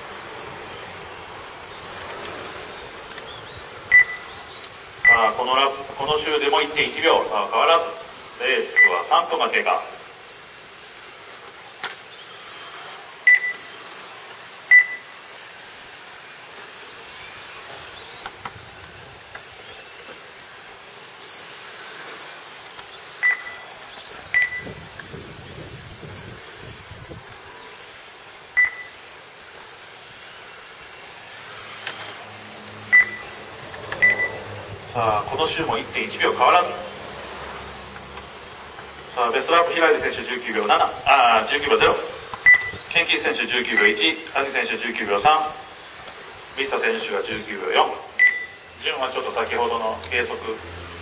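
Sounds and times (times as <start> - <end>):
toy car motors whining: 0.0 - 51.0
short sharp timing beeps: 3.9 - 4.3, 5.0 - 5.4, 8.6 - 9.1, 13.3 - 13.6, 14.7 - 15.1, 23.2 - 23.6, 24.3 - 24.7, 28.6 - 28.9, 32.9 - 33.4, 34.0 - 34.4, 42.4 - 42.9, 43.7 - 44.0, 48.1 - 48.6.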